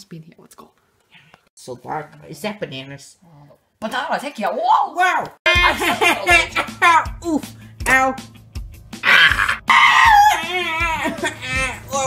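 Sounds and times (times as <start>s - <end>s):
person screaming in pain: 9.0s - 12.0s.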